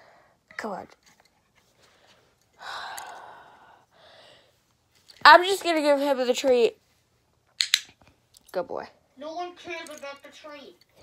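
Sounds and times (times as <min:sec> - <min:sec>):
long breathy sigh: 0:02.6 - 0:04.5.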